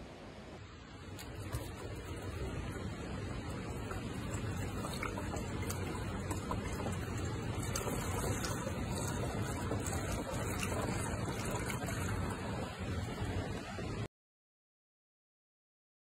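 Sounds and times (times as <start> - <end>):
liquid trickling through funnel: 1.1 - 13.8.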